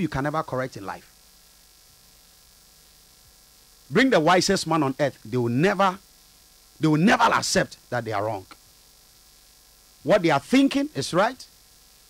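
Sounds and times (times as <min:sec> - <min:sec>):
man talking: 0:00.0 - 0:01.0, 0:03.9 - 0:06.0, 0:06.8 - 0:08.6, 0:10.0 - 0:11.5
faint mains hum: 0:00.0 - 0:12.0.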